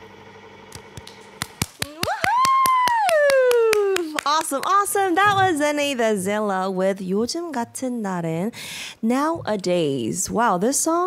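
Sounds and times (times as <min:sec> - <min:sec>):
person clapping: 0:00.8 - 0:05.4
high woo cheer: 0:01.8 - 0:04.3.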